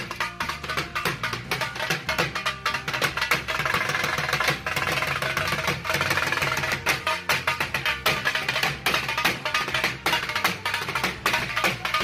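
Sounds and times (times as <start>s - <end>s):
dhol drums beaten with sticks: 0.0s - 12.0s.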